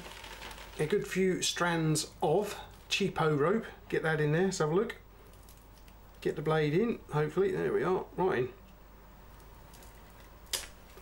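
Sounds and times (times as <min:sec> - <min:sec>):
rope fibre crackles: 0:00.0 - 0:01.1, 0:09.4 - 0:11.0
rope snapping under knife: 0:10.5 - 0:11.0.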